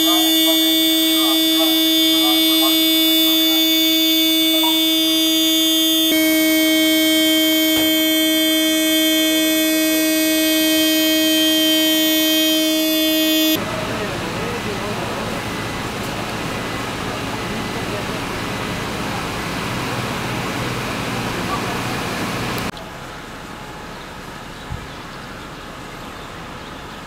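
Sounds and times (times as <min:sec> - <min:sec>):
fire engine machinery whine: 0:00.0 - 0:24.6
street noise: 0:00.0 - 0:27.0.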